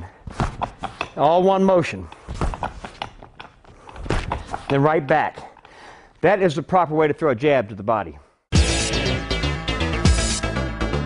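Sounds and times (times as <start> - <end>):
punches thudding on dummy: 0.2 - 0.8.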